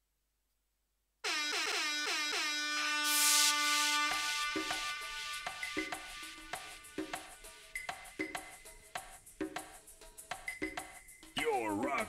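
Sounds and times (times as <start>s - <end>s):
air horn blasts: 1.2s - 6.9s.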